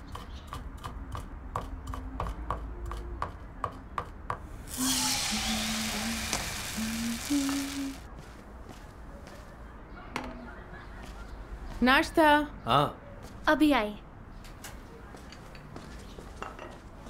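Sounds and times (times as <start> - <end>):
batter sizzling in frying pan: 4.7 - 8.0.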